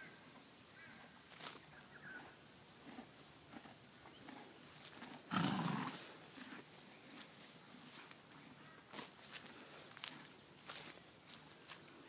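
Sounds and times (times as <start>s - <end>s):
pony snorting: 2.8s - 6.8s.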